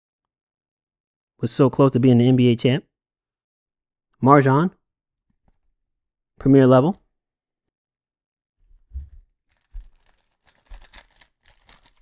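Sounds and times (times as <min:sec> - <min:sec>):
foil pack crinkling: 0:09.5 - 0:12.0
foil pack tearing open: 0:09.5 - 0:12.0.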